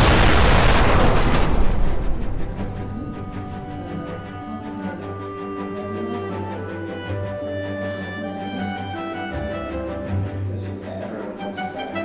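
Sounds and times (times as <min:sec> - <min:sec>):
explosion blast with roar: 0:00.0 - 0:04.4.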